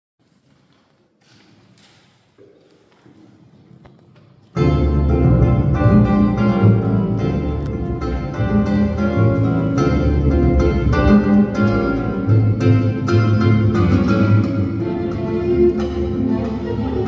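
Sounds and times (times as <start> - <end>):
bossa nova acoustic ensemble: 8.0 - 17.0.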